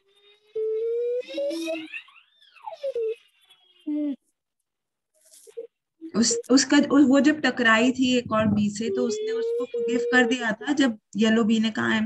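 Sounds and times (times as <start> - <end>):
child's drawn-out wordless voice: 8.5 - 10.9.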